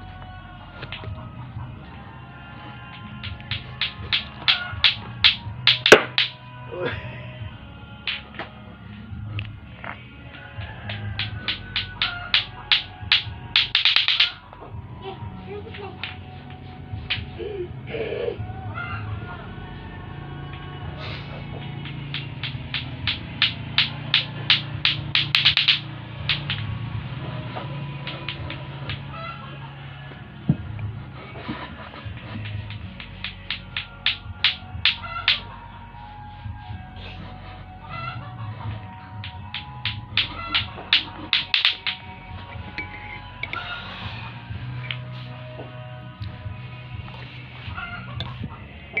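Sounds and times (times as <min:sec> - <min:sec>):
background music: 0:00.0 - 0:49.0
clacker balls knocking together: 0:03.0 - 0:06.4, 0:10.6 - 0:14.4, 0:21.7 - 0:26.8, 0:28.0 - 0:29.1, 0:32.0 - 0:35.4, 0:39.2 - 0:43.6
chicken clucking: 0:37.8 - 0:38.8, 0:47.6 - 0:49.0.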